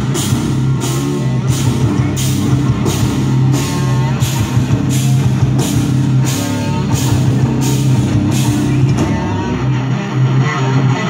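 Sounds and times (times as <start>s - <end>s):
rock band playing: 0.0s - 11.0s.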